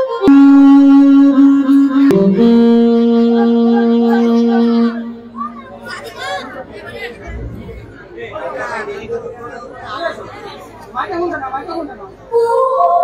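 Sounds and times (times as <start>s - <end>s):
music with long held notes: 0.0s - 5.7s.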